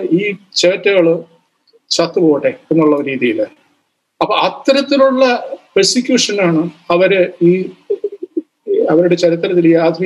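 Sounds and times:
man speaking: 0:00.0 - 0:03.6, 0:04.2 - 0:10.0.

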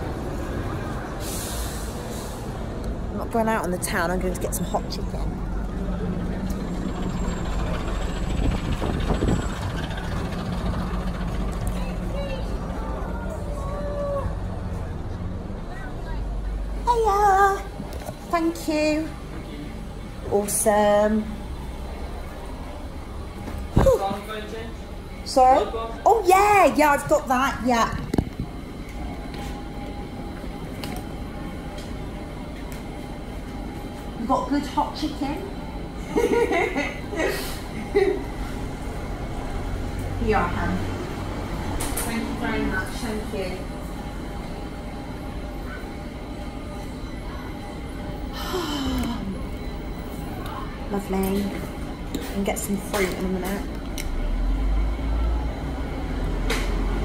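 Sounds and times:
street traffic rumbling: 0:00.0 - 0:57.0.

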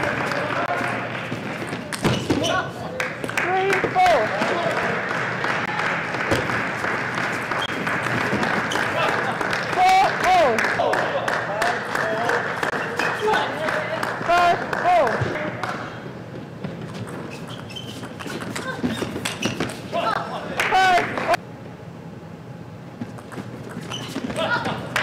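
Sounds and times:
shoe squeaks: 0:01.9 - 0:02.8, 0:07.5 - 0:07.8, 0:08.6 - 0:09.0, 0:16.8 - 0:20.0, 0:23.1 - 0:24.5.

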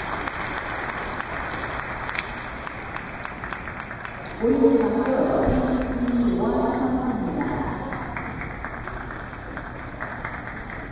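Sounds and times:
scattered applause: 0:00.0 - 0:10.9.

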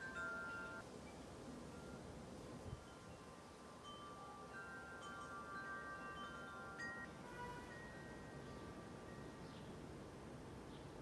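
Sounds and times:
wind chimes ringing: 0:00.0 - 0:09.6
low hiss: 0:00.0 - 0:11.0.

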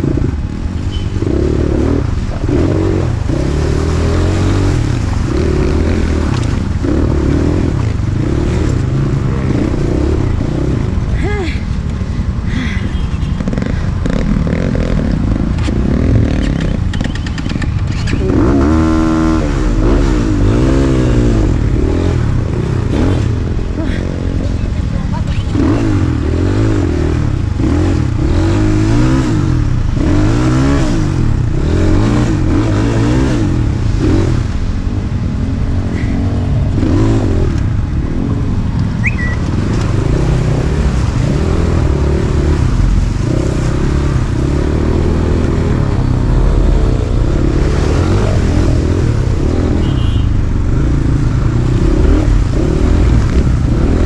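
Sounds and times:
dirt bike engine revving: 0:13.3 - 0:23.5.

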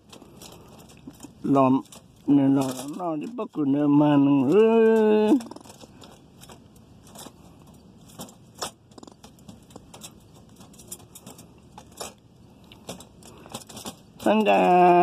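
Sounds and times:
light metallic rattles and clicks: 0:00.0 - 0:15.0
squirrel claws scratching metal mesh: 0:00.0 - 0:15.0.

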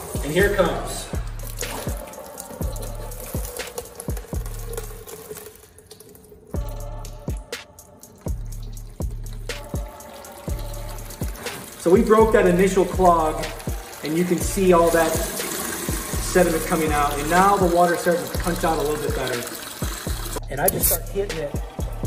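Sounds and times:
background music with beat: 0:00.0 - 0:05.2, 0:06.6 - 0:22.0
water pouring into tub: 0:00.0 - 0:20.4.

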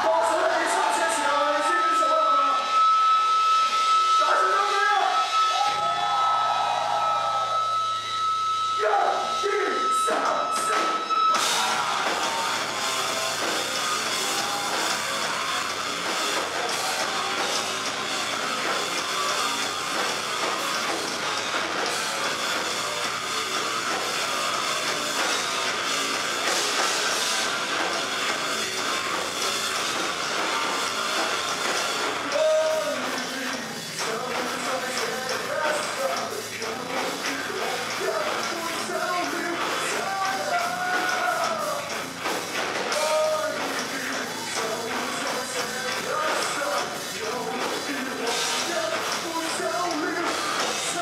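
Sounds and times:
rock band with distorted guitars: 0:00.0 - 0:51.0
high sustained tone: 0:07.1 - 0:14.6
cymbals: 0:07.6 - 0:34.7.

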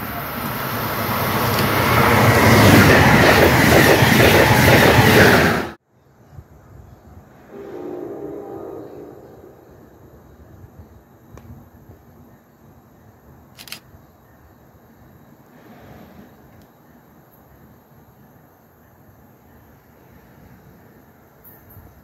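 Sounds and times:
electric train passing at speed: 0:00.0 - 0:05.8, 0:06.6 - 0:13.4, 0:14.9 - 0:22.0
train wheel clatter: 0:01.5 - 0:05.5
faint hum: 0:07.3 - 0:11.4
station background: 0:07.4 - 0:11.0.

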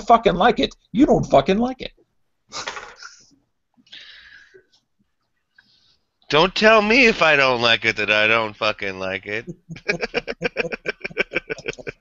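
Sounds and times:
man laughing: 0:09.4 - 0:12.0.

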